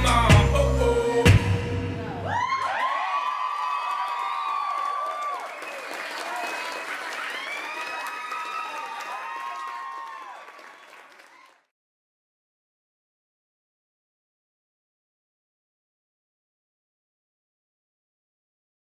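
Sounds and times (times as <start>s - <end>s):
dance music: 0.0s - 2.6s
audience cheering with whoops: 2.0s - 11.6s
audience applauding: 2.3s - 11.7s.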